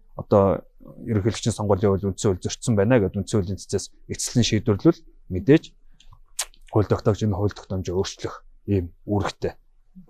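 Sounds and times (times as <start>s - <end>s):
man speaking: 0.2s - 5.7s, 6.4s - 9.6s.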